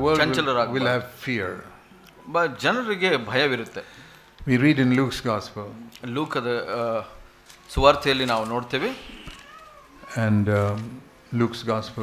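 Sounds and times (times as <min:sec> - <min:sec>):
man speaking: 0:00.0 - 0:03.8, 0:04.5 - 0:09.2, 0:10.0 - 0:12.0.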